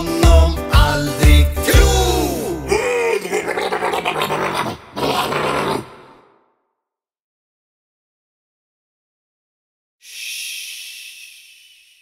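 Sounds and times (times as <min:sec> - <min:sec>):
children's song: 0:00.0 - 0:02.7
rough scratchy growl: 0:03.2 - 0:06.2.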